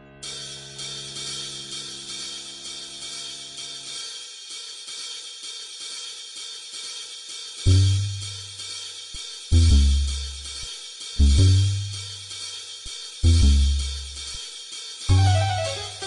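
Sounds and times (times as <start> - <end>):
cymbals and hi-hat: 0.2 - 16.0
low held chord: 15.1 - 16.0.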